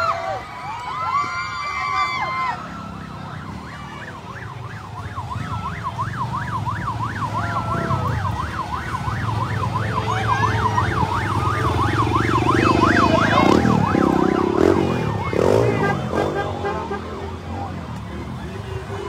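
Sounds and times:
vehicle engines rumbling: 0.0s - 19.0s
siren yelping: 0.8s - 16.3s.

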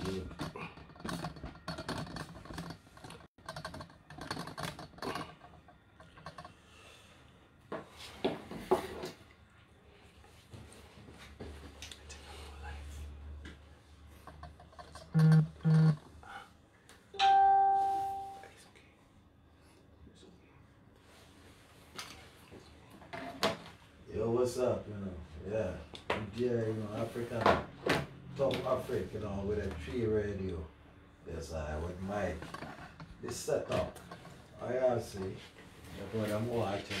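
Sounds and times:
bell-like chime: 17.2s - 18.4s.

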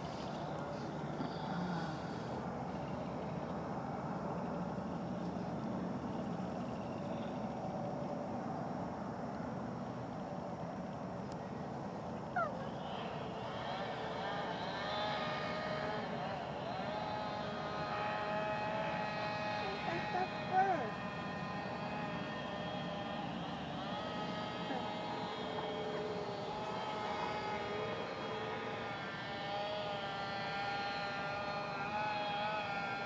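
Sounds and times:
distant motor hum: 0.0s - 33.0s
outdoor background rumble: 0.0s - 33.0s.

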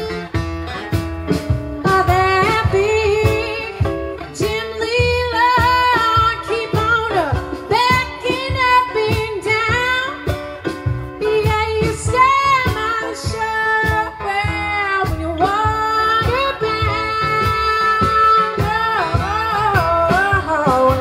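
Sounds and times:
blues band playing: 0.0s - 21.0s
woman singing: 1.8s - 21.0s.

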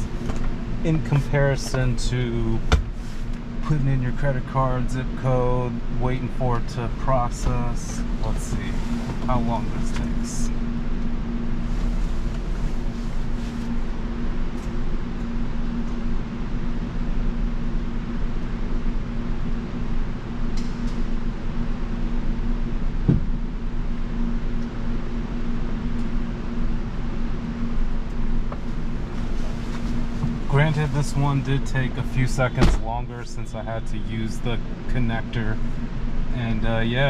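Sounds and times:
fan-like mechanical hum: 0.0s - 37.0s.

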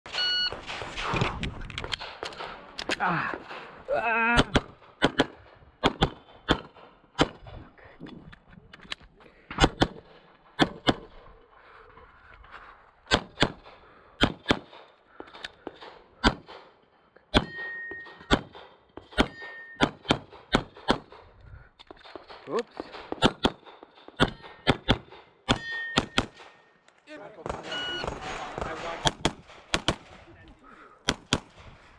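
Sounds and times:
pistol shots: 4.4s - 7.5s, 22.1s - 26.6s, 27.4s - 30.2s, 31.0s - 31.7s.

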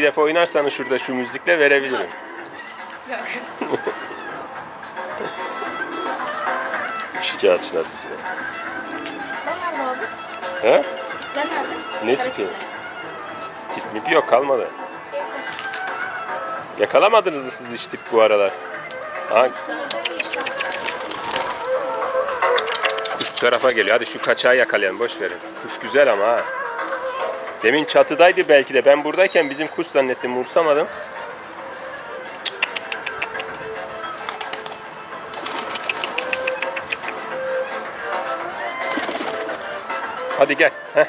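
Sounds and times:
pigeons cooing: 0.0s - 14.2s, 15.2s - 41.0s
background music: 0.0s - 41.0s
faint voices: 0.0s - 41.0s
pigeon wings flapping: 15.4s - 16.2s, 19.8s - 24.5s, 26.8s - 27.8s, 32.5s - 37.6s, 38.7s - 40.6s
quick evenly spaced clicks: 19.9s - 24.2s, 35.4s - 37.4s.

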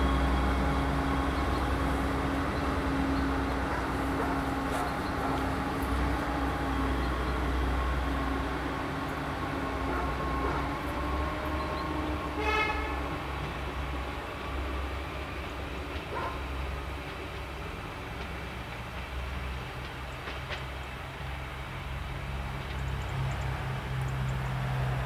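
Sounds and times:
train engine low hum: 0.0s - 25.0s
train horn toot: 9.4s - 13.4s.

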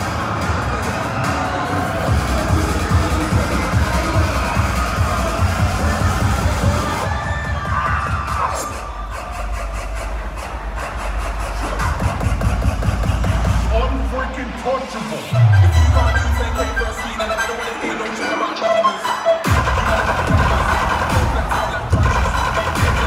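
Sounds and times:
loud dubstep music: 0.0s - 23.0s.

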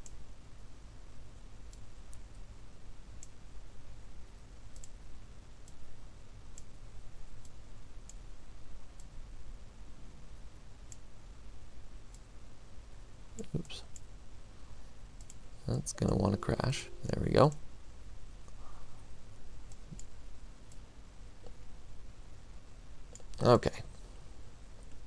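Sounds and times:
steady low hum: 0.0s - 25.0s
computer mouse clicks: 4.7s - 5.0s, 6.5s - 6.7s, 7.4s - 8.2s, 10.9s - 11.1s, 15.2s - 15.4s, 19.7s - 20.8s.

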